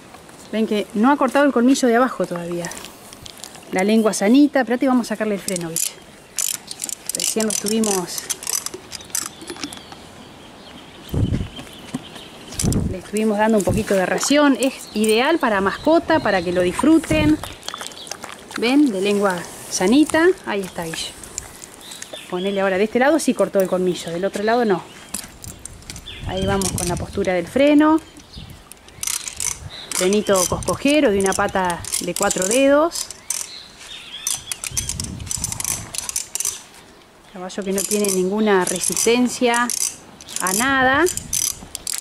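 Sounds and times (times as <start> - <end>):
metal horse bit chain clinking: 5.5 - 9.9, 28.7 - 33.6, 34.2 - 36.6, 37.7 - 42.0.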